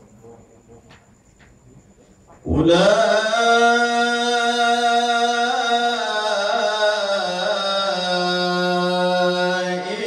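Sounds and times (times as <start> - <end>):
man reciting melodically: 2.3 - 10.0.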